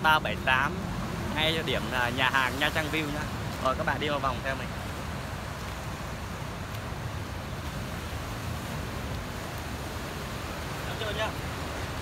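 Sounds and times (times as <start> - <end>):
sea surf breaking on rocks: 0.0 - 12.0.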